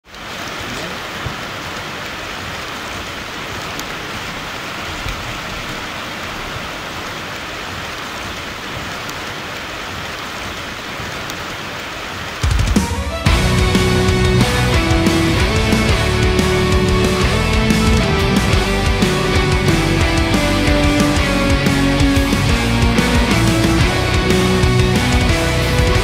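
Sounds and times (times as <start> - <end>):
individual raindrops: 0.0 - 26.0
rain on hard surfaces: 0.0 - 26.0.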